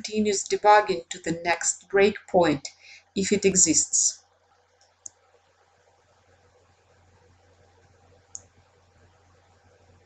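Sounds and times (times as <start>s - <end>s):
faint low hum: 0.0s - 10.0s
computer mouse click: 4.8s - 5.2s, 8.3s - 8.5s.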